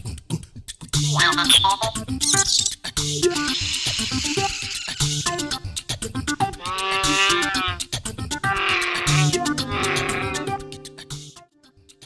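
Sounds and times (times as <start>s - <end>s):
upbeat background music: 0.1s - 12.0s
drawn-out creature roars: 6.6s - 7.8s, 8.4s - 10.6s.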